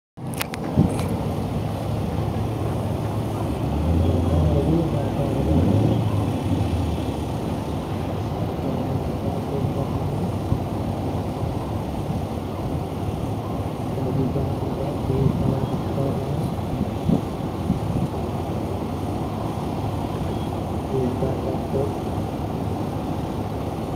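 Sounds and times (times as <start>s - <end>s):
truck engines idling: 0.2s - 23.9s
people talking: 2.6s - 7.0s, 7.6s - 10.4s, 13.8s - 17.2s, 20.9s - 22.1s.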